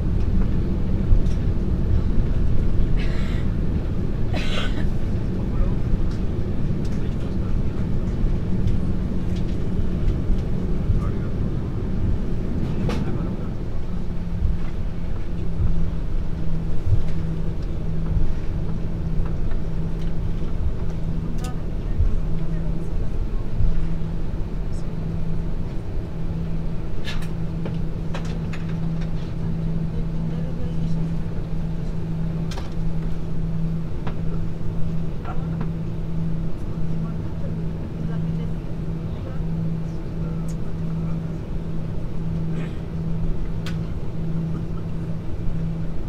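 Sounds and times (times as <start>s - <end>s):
jet engines running low: 0.0s - 46.0s
low pulsing hum: 0.0s - 46.0s.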